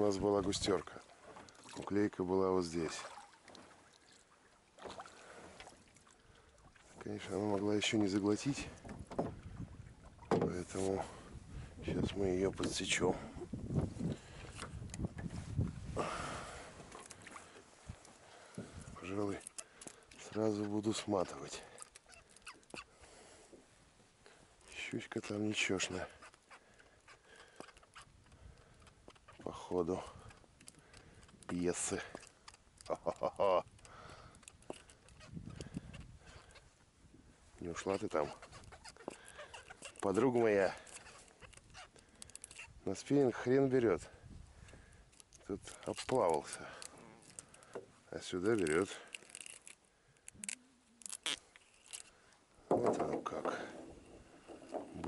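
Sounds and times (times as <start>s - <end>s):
fishing gear scraping and rustling: 6.8s - 55.0s
faint squeaks or clicks: 18.6s - 23.0s, 24.3s - 36.8s, 37.6s - 44.2s, 44.8s - 52.3s.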